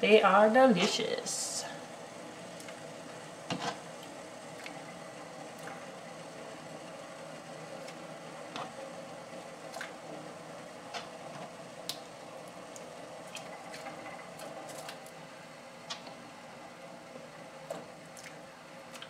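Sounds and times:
water boiling in a saucepan: 0:00.0 - 0:19.0.

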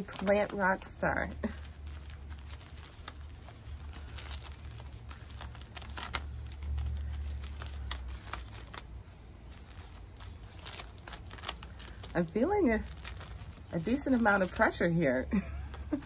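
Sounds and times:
plastic bag crinkling: 0:00.0 - 0:16.0.

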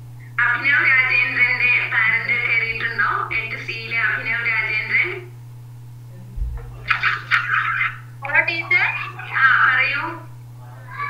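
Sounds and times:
steady low hum: 0:00.0 - 0:11.0
person speaking over call line: 0:08.2 - 0:10.8.

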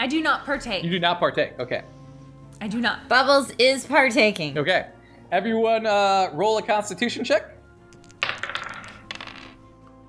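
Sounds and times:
dice rattling on hard surface: 0:07.9 - 0:09.7.

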